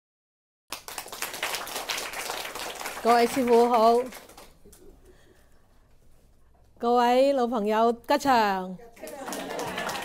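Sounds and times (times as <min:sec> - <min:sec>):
audience applause: 0:00.7 - 0:04.6, 0:09.0 - 0:10.0.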